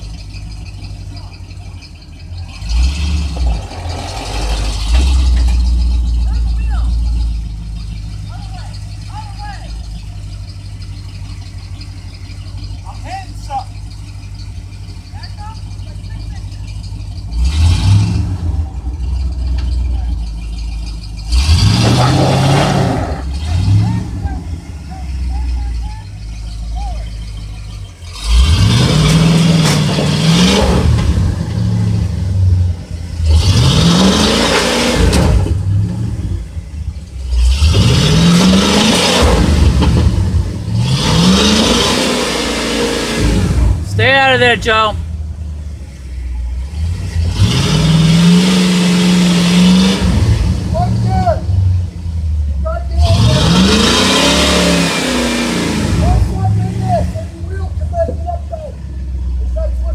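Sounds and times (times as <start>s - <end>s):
truck engine idling: 0.0s - 59.9s
truck engine revving hard: 0.0s - 59.9s.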